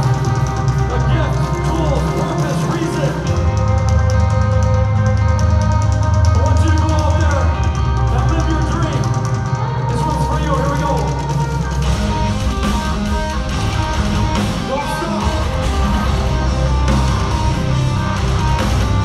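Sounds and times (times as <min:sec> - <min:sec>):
metal band playing: 0:00.0 - 0:19.0.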